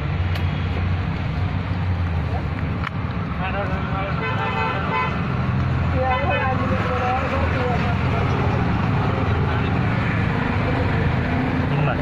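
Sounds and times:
voices: 5.8s - 10.9s.

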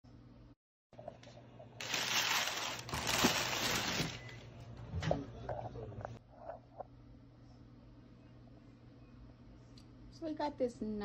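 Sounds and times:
packing paper rustling: 1.8s - 4.4s.

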